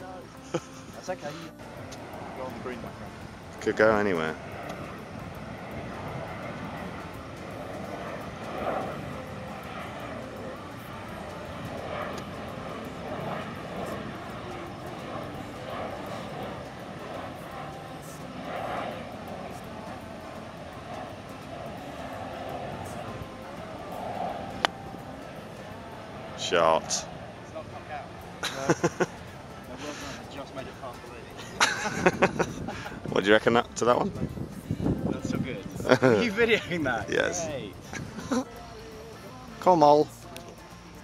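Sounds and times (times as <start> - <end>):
airplane drone overhead: 0.0 - 41.0
golf club striking ball: 24.6 - 24.8.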